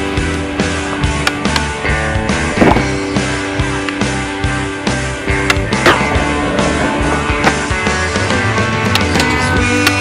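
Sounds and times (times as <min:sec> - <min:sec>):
music soundtrack: 0:00.0 - 0:10.0
skateboard clack: 0:05.3 - 0:10.0
skateboard grinding on metal rail: 0:05.5 - 0:10.0.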